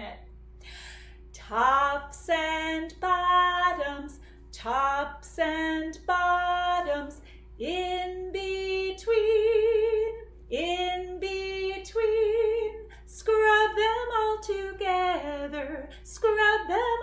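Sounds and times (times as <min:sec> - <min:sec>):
woman singing unaccompanied: 0:01.4 - 0:17.0.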